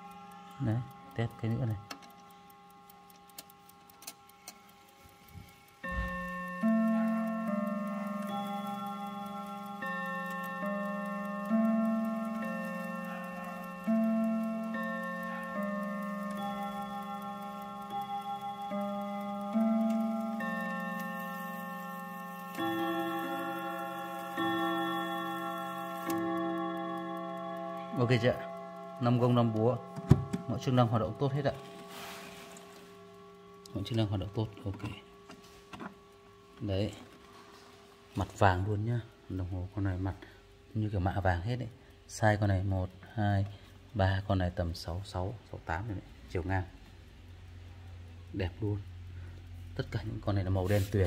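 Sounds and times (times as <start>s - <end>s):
clock chime melody: 0.0s - 35.6s.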